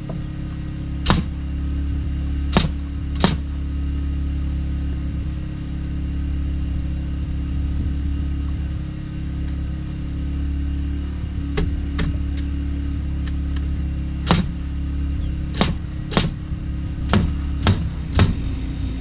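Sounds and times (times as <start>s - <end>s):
generator engine hum: 0.0s - 19.0s
nail gun shots: 1.0s - 1.4s, 2.5s - 3.5s, 14.2s - 14.6s, 15.5s - 16.4s, 17.0s - 18.4s.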